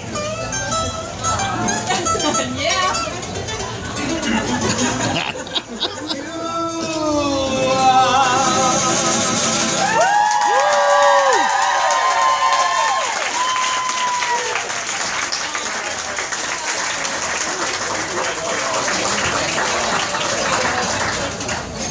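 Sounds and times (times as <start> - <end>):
voices: 1.5 - 9.4
crowd applauding and cheering: 8.9 - 21.9
long whoops: 9.8 - 14.6.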